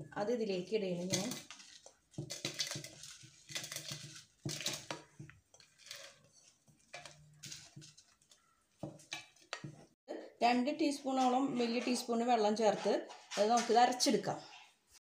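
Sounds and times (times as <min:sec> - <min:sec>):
blade scraping a frying pan: 0:01.1 - 0:08.4.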